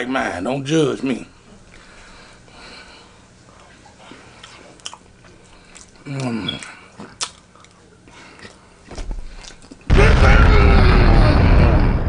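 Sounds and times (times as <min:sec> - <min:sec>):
chewing mouth clicks: 0:03.6 - 0:08.6.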